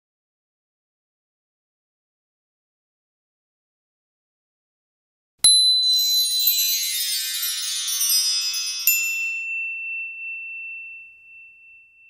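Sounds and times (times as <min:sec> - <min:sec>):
bright ding ringing: 0:05.4 - 0:12.0
sparkling chime shimmer: 0:05.4 - 0:12.0.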